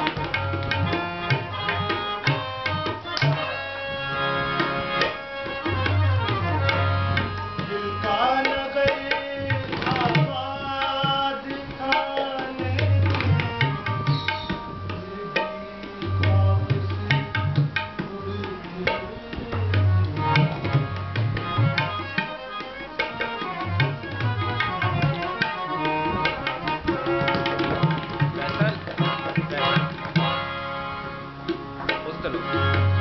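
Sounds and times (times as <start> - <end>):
harmonium chords: 0.0 - 33.0
tabla playing: 0.0 - 33.0.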